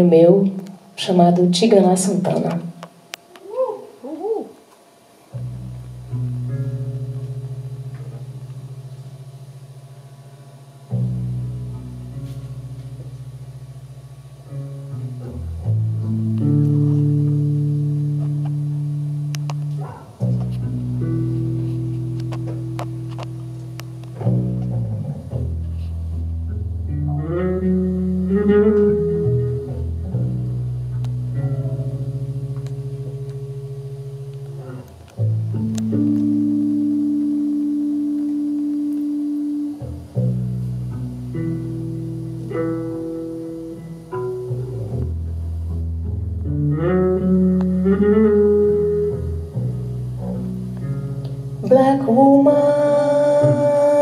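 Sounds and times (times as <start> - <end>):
electric bass and keyboard chords: 5.3 - 54.0
plucked higher notes: 5.3 - 54.0.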